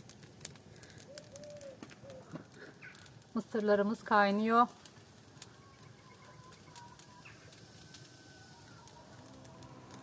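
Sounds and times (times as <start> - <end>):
wood fire crackling: 0.0 - 10.0
faint bird calls: 0.9 - 3.1, 5.4 - 9.1.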